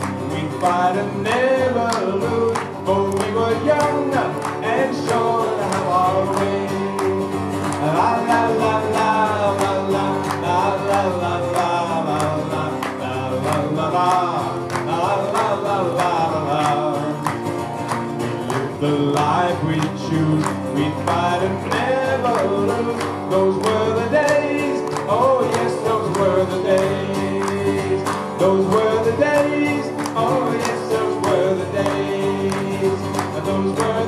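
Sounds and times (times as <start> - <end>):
person singing: 0.0 - 17.3, 18.4 - 34.0
acoustic guitar strumming: 0.0 - 34.0.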